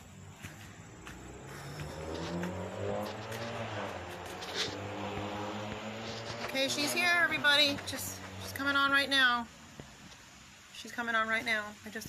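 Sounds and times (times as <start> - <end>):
vehicle engine humming: 0.0 - 10.7.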